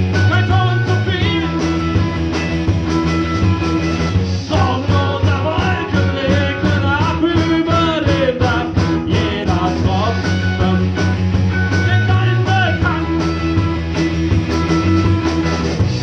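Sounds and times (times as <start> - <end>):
bass guitar notes: 0.0 - 16.0
drum beat: 0.0 - 16.0
electric guitars: 0.0 - 16.0.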